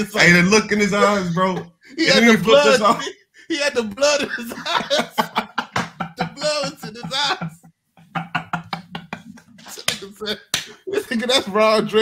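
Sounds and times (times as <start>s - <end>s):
low voice: 0.0s - 12.0s.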